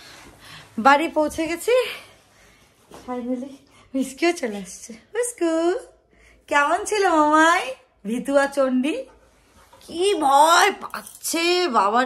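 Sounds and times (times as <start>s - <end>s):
woman speaking: 0.8s - 2.2s, 3.0s - 9.2s, 9.8s - 12.0s.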